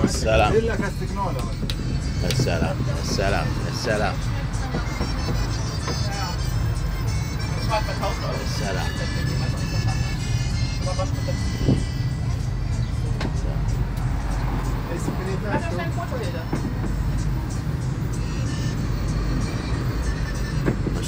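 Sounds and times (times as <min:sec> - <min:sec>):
road train low rumble: 0:00.0 - 0:21.0.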